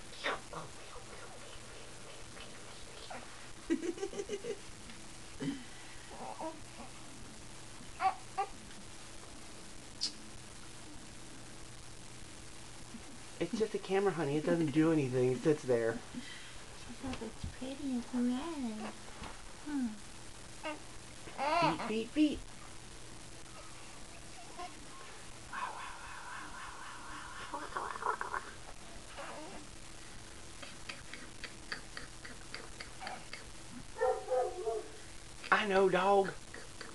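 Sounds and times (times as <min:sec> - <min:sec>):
baby cooing and babbling: 0:08.0 - 0:08.6, 0:20.6 - 0:21.9
dog whining: 0:34.0 - 0:35.0.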